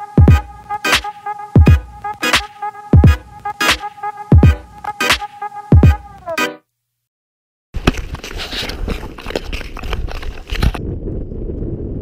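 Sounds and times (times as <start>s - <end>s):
electronic music tones sliding down: 0.0s - 6.6s
wind rumbling on microphone: 7.8s - 12.0s.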